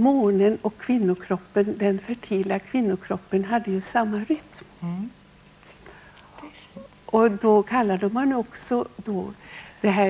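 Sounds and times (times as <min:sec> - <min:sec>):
woman talking: 0:00.0 - 0:04.5, 0:06.4 - 0:10.0
faint breaths: 0:05.6 - 0:06.7, 0:09.4 - 0:09.8.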